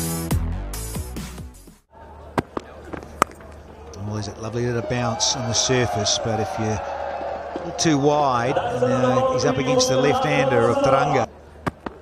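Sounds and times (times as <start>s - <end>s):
stadium hum: 1.9s - 12.0s
cricket bat striking ball: 2.2s - 3.8s, 11.6s - 12.0s.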